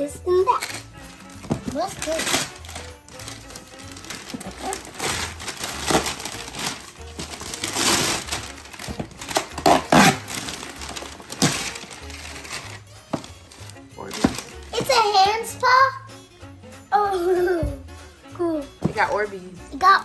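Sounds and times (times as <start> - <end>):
wrapping paper tearing and crinkling: 0.5 - 14.9.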